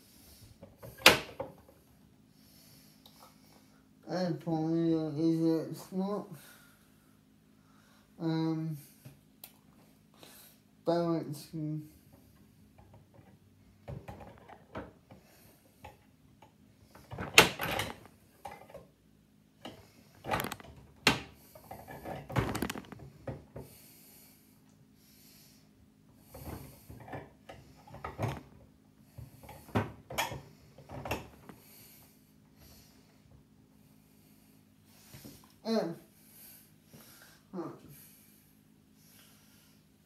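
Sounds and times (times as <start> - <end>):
clicks and knocks of handling: 19.6 - 23.4.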